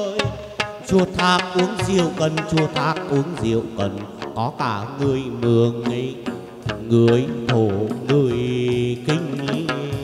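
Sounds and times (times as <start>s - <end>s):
instrumental accompaniment: 0.0s - 10.0s
person singing long wavering notes: 0.0s - 10.0s
sharp percussion strokes: 0.0s - 10.0s.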